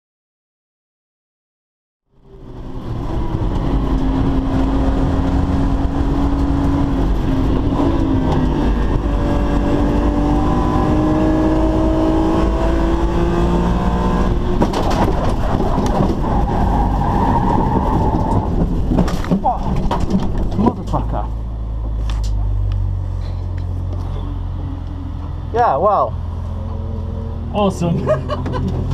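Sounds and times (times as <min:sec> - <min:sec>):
race car engine pulling hard: 0:02.2 - 0:21.4, 0:22.2 - 0:28.9
tyre and wind noise: 0:02.7 - 0:20.9
low rumble: 0:14.3 - 0:28.9
car crash bangs and scrapes: 0:14.6 - 0:16.7, 0:17.4 - 0:20.8.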